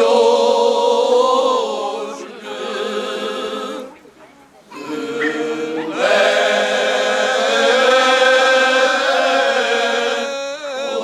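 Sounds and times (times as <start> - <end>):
male choir singing unaccompanied: 0.0 - 4.1, 4.7 - 11.0
man singing solo: 9.0 - 11.0.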